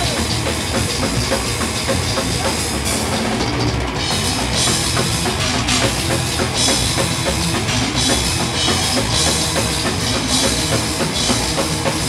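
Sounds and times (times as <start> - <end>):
death metal band playing: 0.0 - 12.0
heavy distorted guitars: 0.0 - 12.0
pounding drums: 0.0 - 12.0.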